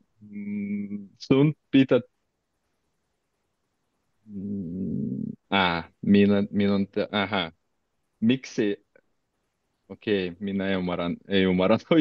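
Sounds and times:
man humming hesitantly: 0.2s - 1.1s, 4.3s - 5.4s.

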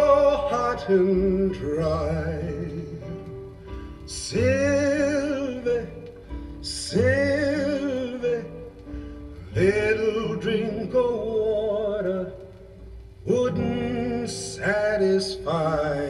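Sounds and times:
man singing from a record: 0.0s - 16.0s.

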